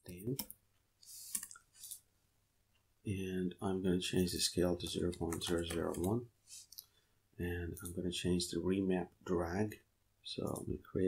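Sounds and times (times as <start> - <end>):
computer keyboard keystrokes: 5.2 - 6.2.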